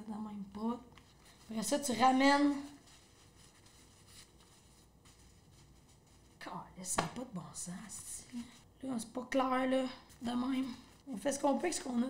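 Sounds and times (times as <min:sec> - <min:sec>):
woman speaking: 0:00.0 - 0:02.8, 0:06.4 - 0:12.0
paper rustling: 0:00.9 - 0:07.1.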